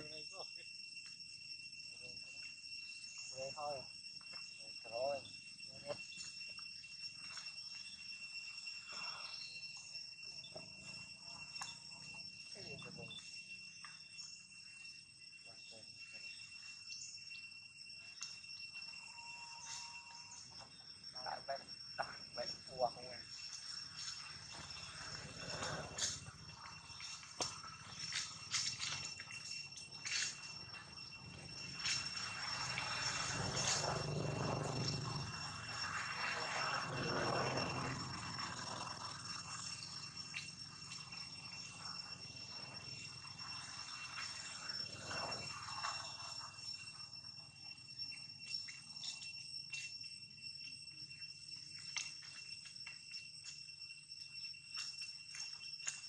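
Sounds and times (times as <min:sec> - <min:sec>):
insects calling: 0:00.0 - 0:56.0.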